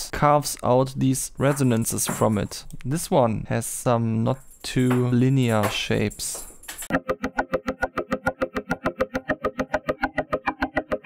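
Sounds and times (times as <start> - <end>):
repeating plucked synth notes: 6.9 - 11.0.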